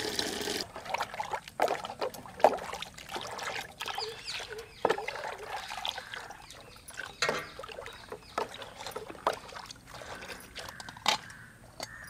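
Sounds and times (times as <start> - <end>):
liquid sloshing and splashing: 0.0 - 11.3.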